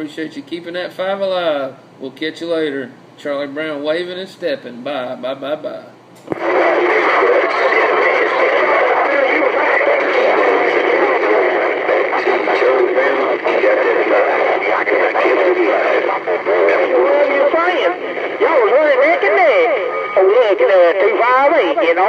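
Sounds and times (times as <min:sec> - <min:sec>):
radio hiss: 0:06.3 - 0:22.0
garbled voices over cb radio: 0:06.4 - 0:22.0.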